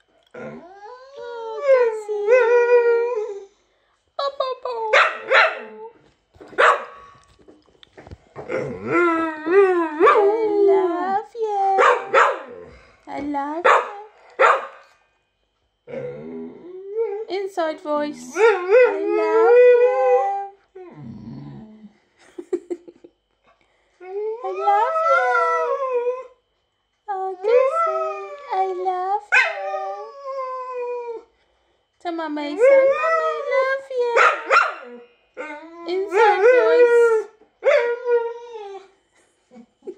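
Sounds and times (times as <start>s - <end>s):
dog barking: 5.0s - 5.7s, 6.6s - 7.0s, 11.8s - 12.6s, 13.6s - 14.8s, 34.2s - 34.9s
dog howling: 24.3s - 26.3s.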